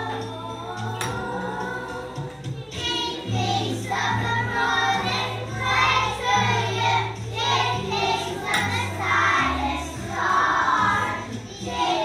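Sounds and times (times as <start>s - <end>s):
children singing together: 0.0s - 12.0s
music with steady bass line: 0.0s - 12.0s.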